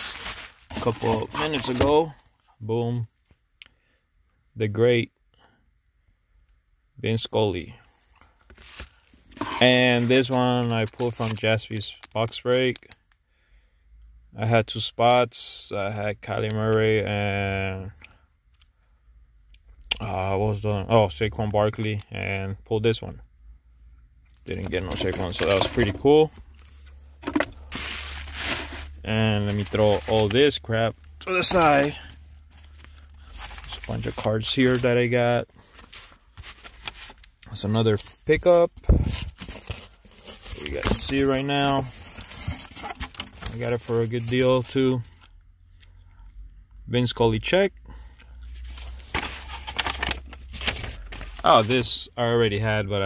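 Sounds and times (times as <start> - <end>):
bubble wrap crinkling: 0.0 - 2.0, 27.2 - 30.6
plastic and paper wrapping rustling: 0.0 - 2.1, 8.5 - 11.6, 24.5 - 44.6, 48.5 - 52.1.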